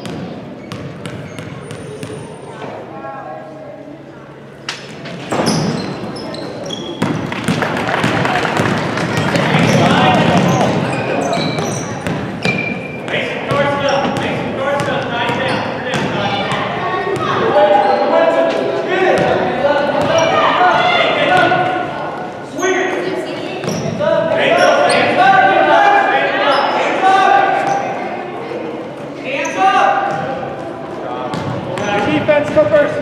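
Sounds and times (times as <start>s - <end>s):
basketball bouncing on court: 0.0s - 2.3s, 5.3s - 17.4s, 30.1s - 30.4s, 31.3s - 32.7s
sneaker squeaks: 0.0s - 2.7s, 4.8s - 7.6s, 9.0s - 14.4s, 15.2s - 18.2s, 20.0s - 25.2s, 26.4s - 27.0s, 27.6s - 28.1s, 29.0s - 30.3s
spectators and players shouting: 16.2s - 22.1s, 24.2s - 28.4s.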